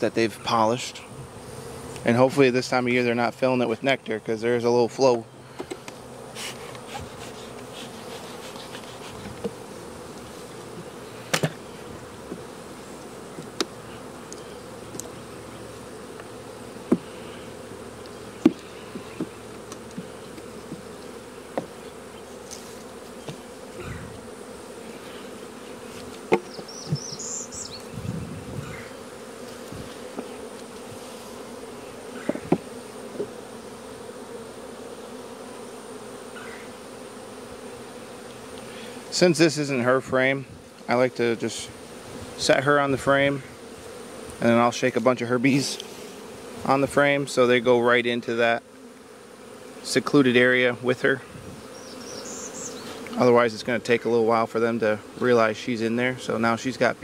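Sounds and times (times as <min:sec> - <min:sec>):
bees buzzing: 0:00.0 - 0:57.0
knocks on wooden hive boxes: 0:09.2 - 0:09.6, 0:10.7 - 0:11.6, 0:12.2 - 0:12.5, 0:13.3 - 0:13.8, 0:16.2 - 0:17.1, 0:18.4 - 0:20.9, 0:21.5 - 0:21.8, 0:23.2 - 0:23.5, 0:26.2 - 0:27.3, 0:32.2 - 0:33.4.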